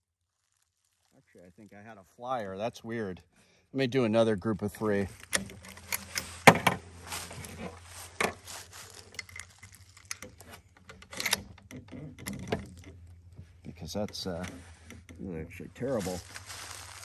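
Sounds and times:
rifle bolt clicks and clacks: 9.2s - 12.7s.

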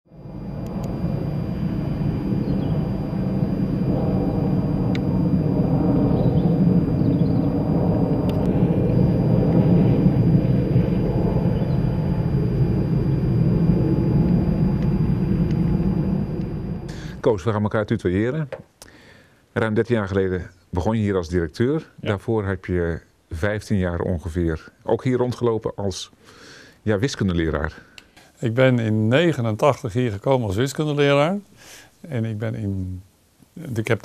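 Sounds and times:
low rumble of road traffic: 0.1s - 17.2s.

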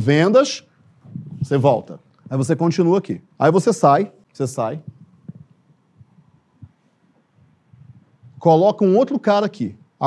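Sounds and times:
faint low thumps: 0.8s - 1.6s, 4.8s - 6.8s, 7.4s - 8.5s.

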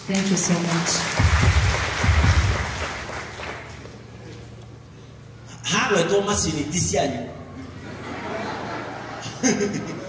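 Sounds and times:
crowd applauding: 0.0s - 4.1s.

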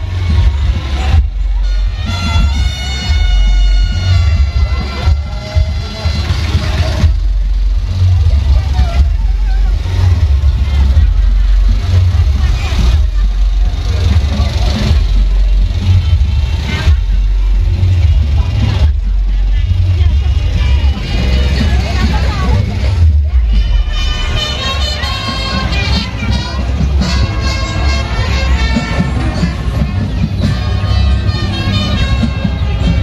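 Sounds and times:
loud carnival music with heavy bass: 0.0s - 33.0s
voices: 0.0s - 33.0s.

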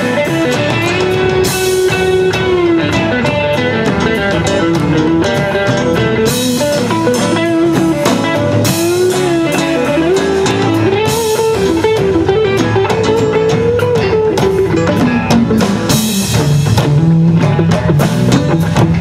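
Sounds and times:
drum kit: 0.0s - 19.0s
lead electric guitar with bent notes: 0.0s - 19.0s
strummed guitars: 0.0s - 19.0s.

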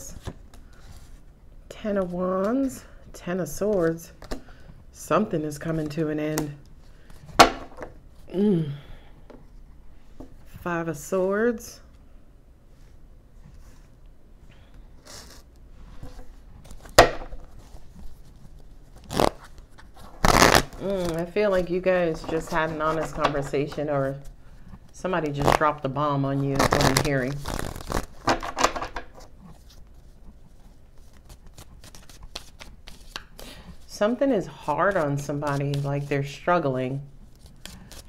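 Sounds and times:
cards shuffled by hand: 15.0s - 24.3s, 26.4s - 34.0s
cards rustling: 26.3s - 29.8s, 30.9s - 34.0s.

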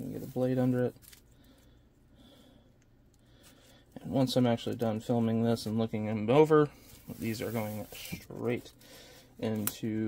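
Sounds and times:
faint scrapes: 6.7s - 8.7s.

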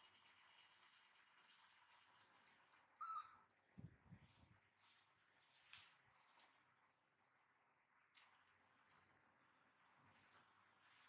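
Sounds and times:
baby monkey squeak: 3.0s - 3.4s.

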